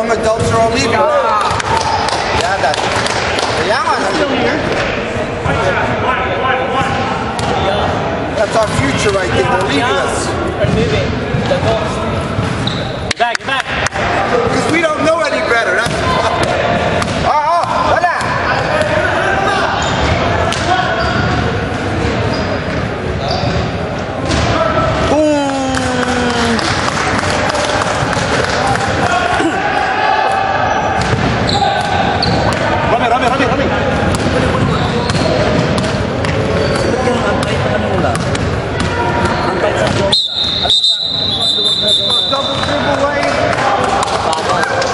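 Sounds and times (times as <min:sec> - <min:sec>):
chatter of voices: 0:13.2 - 0:40.2.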